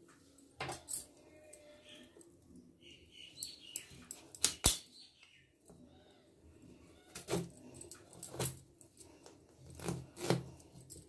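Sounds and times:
knife scraping peel: 9.6 - 10.7.

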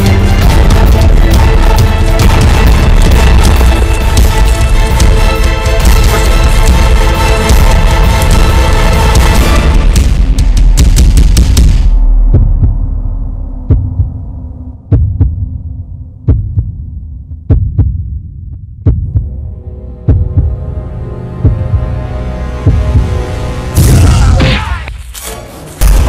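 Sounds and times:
rapid percussive hits: 0.0 - 13.0
low heartbeat-like thump: 0.4 - 21.9, 22.6 - 24.2.

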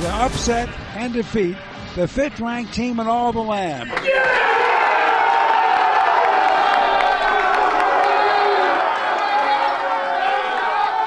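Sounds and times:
group shouting and cheering: 3.9 - 11.0.

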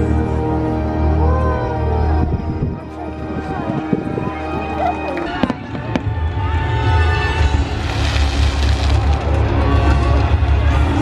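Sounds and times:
fireworks crackling hiss: 7.5 - 10.0.

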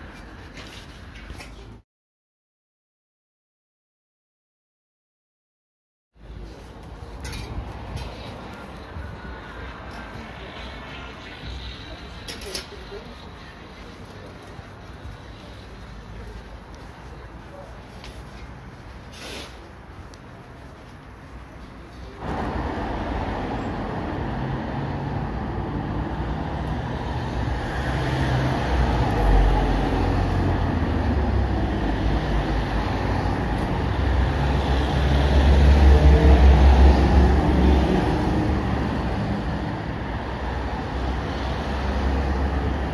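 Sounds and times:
road traffic rumble: 0.0 - 1.8, 6.2 - 42.9.

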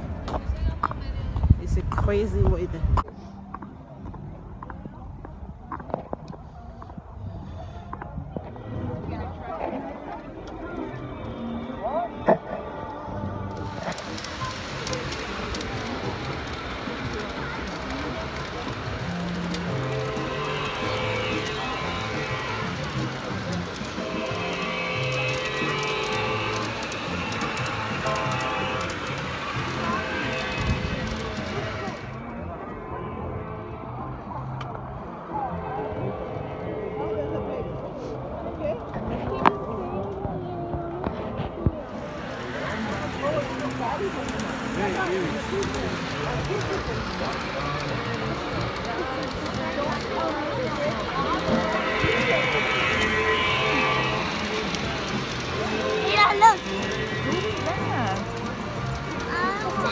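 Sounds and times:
muffled outdoor background: 0.0 - 59.9
music playing: 8.0 - 59.9.

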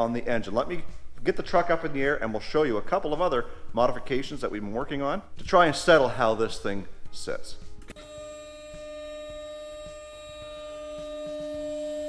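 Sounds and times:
hydraulic pump whining hum: 7.9 - 12.0.

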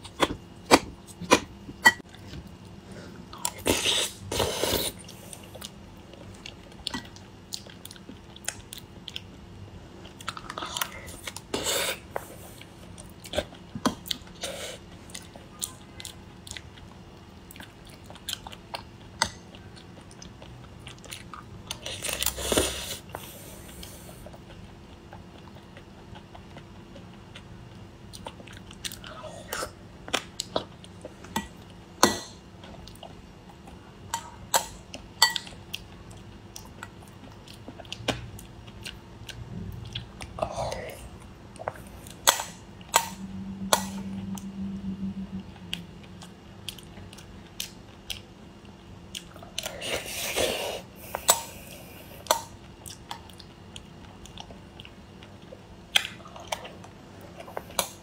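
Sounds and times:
close chewing and eating: 0.0 - 58.0.

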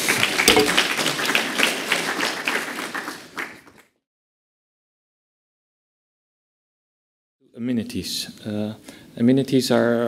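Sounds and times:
audience applauding: 0.0 - 3.9.

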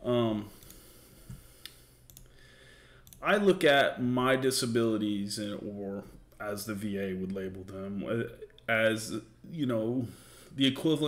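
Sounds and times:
soft clicks: 0.6 - 2.3, 3.0 - 3.2.

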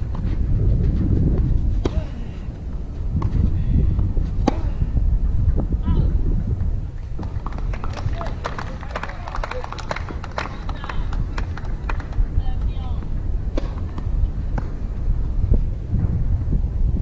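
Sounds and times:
steady low rumble: 0.0 - 17.0
racket hitting tennis ball: 1.8 - 2.2, 4.3 - 4.8, 13.5 - 14.8.

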